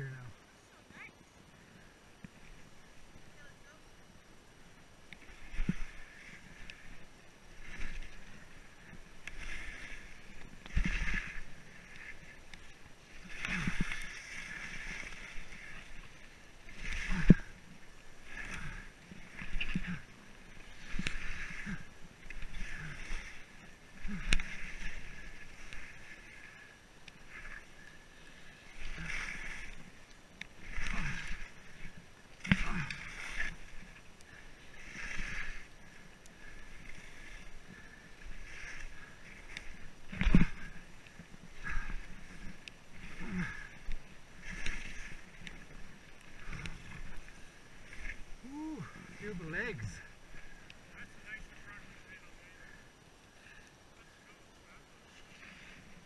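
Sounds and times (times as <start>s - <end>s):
skis swishing through snow: 4.8s - 52.8s, 54.2s - 56.0s.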